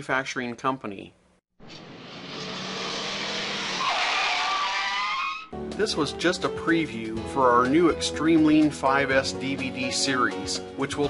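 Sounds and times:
car passing: 0:01.8 - 0:05.1
tyres squealing: 0:03.6 - 0:05.5.

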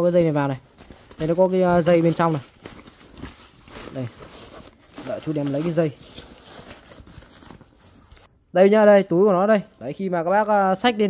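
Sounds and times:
hand rummaging in leather bag: 0:00.0 - 0:08.3.

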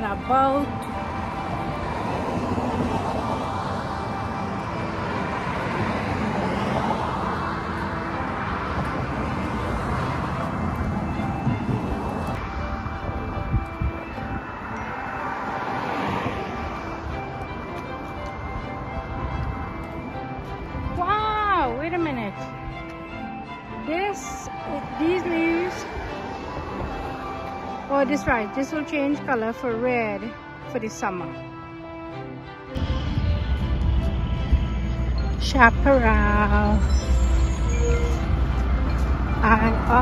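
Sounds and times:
background music: 0:00.0 - 0:40.0
cars passing: 0:00.0 - 0:40.0.

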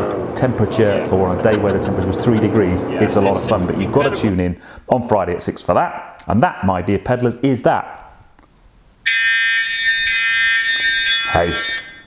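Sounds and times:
timer alarm buzzing tone: 0:09.0 - 0:12.0.

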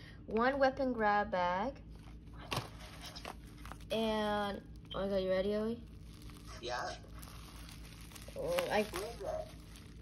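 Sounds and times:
paper and bubble wrap crinkling: 0:01.9 - 0:10.0
packaging rustling: 0:02.0 - 0:04.9, 0:05.5 - 0:10.0.

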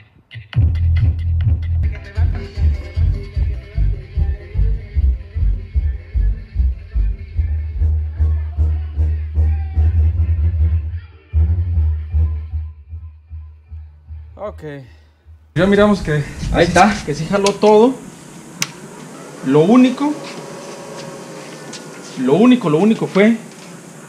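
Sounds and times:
loud music with pulsing bass: 0:00.5 - 0:08.9.

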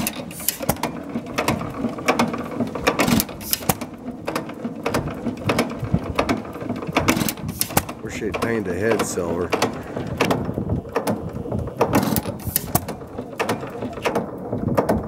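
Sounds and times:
gas engine clicking and knocking: 0:00.0 - 0:15.0.

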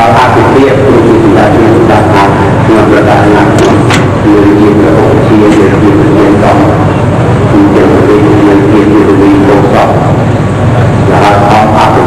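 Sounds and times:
man speaking into a microphone: 0:00.0 - 0:10.2, 0:11.0 - 0:12.0
constant noisy hiss: 0:00.0 - 0:12.0.

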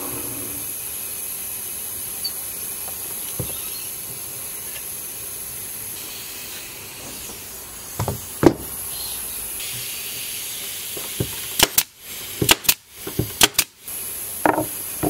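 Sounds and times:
steady high hiss: 0:00.0 - 0:15.0.

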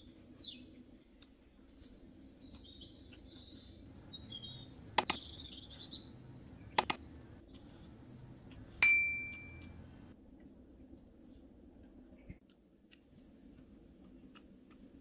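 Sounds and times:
birds chirping: 0:01.7 - 0:10.1
double mouse clicks: 0:04.9 - 0:05.3, 0:06.4 - 0:07.7
bell ding: 0:08.8 - 0:09.8.

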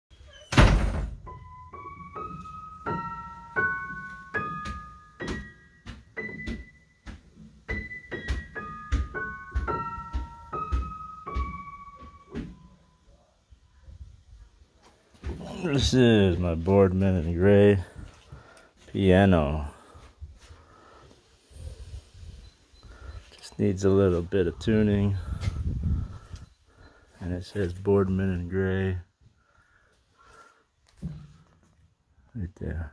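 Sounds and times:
piano notes: 0:01.2 - 0:13.0
person talking: 0:15.3 - 0:17.9, 0:23.4 - 0:25.3, 0:27.2 - 0:29.1.

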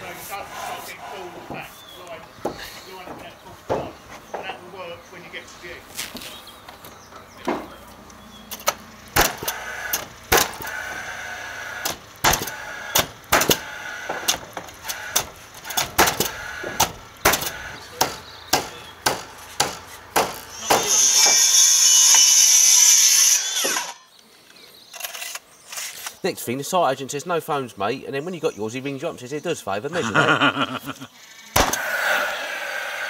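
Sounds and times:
nails hammered into timber: 0:08.5 - 0:10.7, 0:11.8 - 0:20.9.

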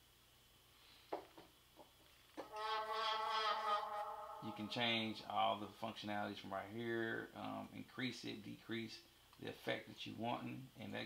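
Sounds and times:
synthesized vocal notes: 0:02.4 - 0:05.3
buzzy held vocal note: 0:02.4 - 0:05.7.

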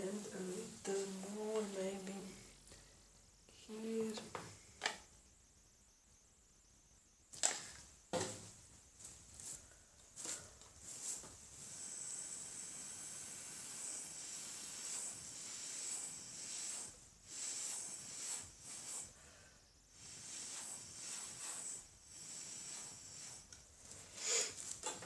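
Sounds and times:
air blown through a straw: 0:11.6 - 0:24.7.

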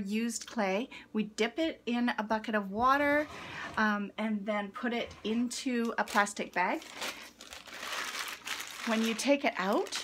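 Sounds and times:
plastic bag crinkling: 0:05.8 - 0:10.0.

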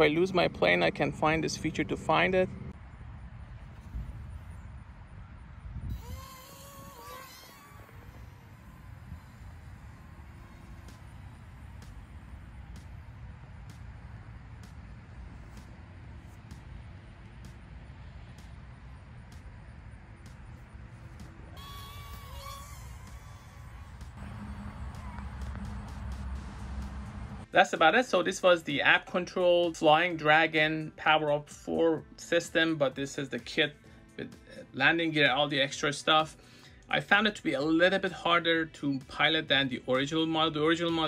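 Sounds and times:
wavering distant calls: 0:05.9 - 0:13.2, 0:21.0 - 0:27.4
low rumble: 0:22.8 - 0:27.5.

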